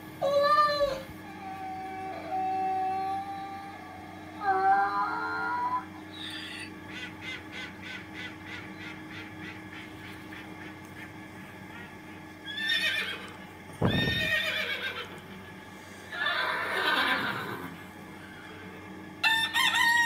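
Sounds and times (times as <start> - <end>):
horse whinnying: 12.5 - 15.1, 16.1 - 17.8.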